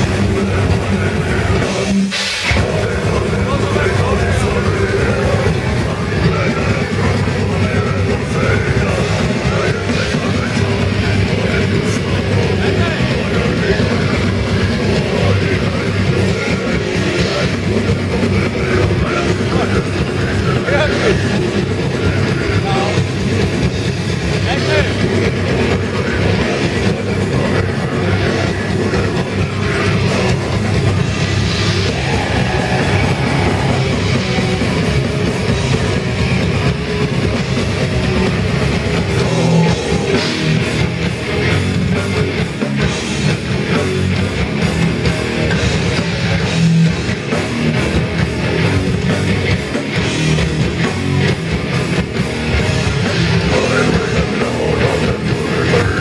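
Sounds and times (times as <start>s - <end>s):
death metal band playing: 0.0s - 56.0s
growled vocals: 24.4s - 36.4s, 38.9s - 44.2s.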